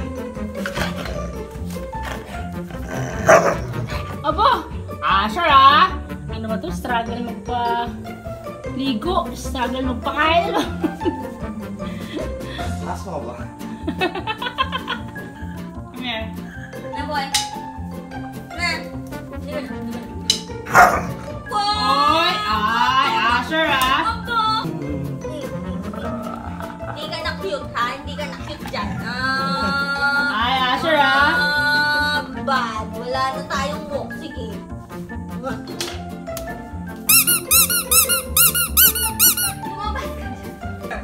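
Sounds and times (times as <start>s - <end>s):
background music: 0.0s - 41.0s
dog barking: 3.2s - 3.8s, 20.7s - 21.2s.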